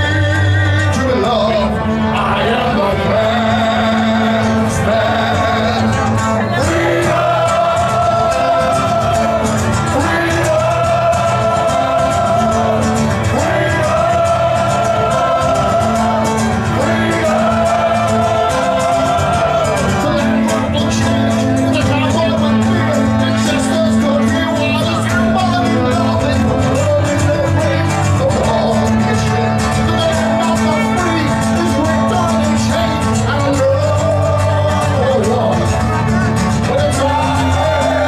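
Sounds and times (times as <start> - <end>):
acoustic rock accompaniment: 0.0 - 38.0
guitar playing: 0.0 - 38.0
man singing: 0.0 - 38.0.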